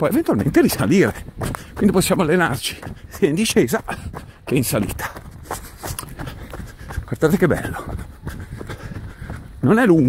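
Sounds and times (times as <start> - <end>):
footfalls on a dirt trail: 0.0 - 10.0
wind rumble on microphone: 0.0 - 10.0
man breathing: 1.4 - 1.8, 3.9 - 7.1, 7.8 - 9.6.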